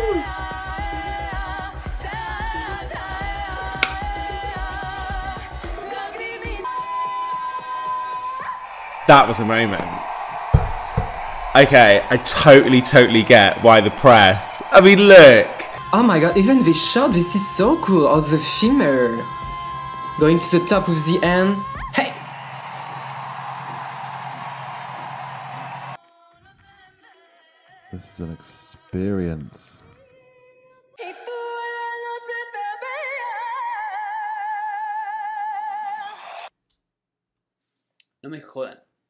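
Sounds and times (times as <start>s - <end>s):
song playing: 3.8s - 4.5s, 9.0s - 24.8s
crowd cheering: 3.8s - 26.0s, 35.6s - 36.5s
woman singing long high note: 15.7s - 22.0s.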